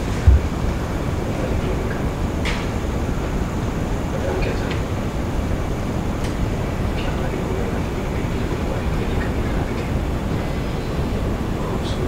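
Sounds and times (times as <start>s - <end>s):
low background rumble: 0.0s - 12.0s
faint indistinct voices: 4.0s - 12.0s.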